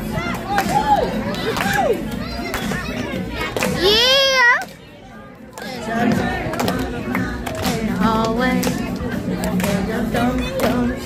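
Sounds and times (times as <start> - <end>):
children chattering and shouting: 0.0 - 11.0.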